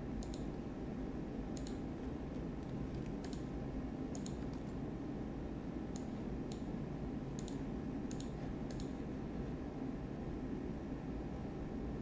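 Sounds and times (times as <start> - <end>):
low room hum: 0.0 - 12.0
computer mouse clicking: 0.2 - 0.6, 1.5 - 4.8, 5.9 - 6.7, 7.3 - 9.0.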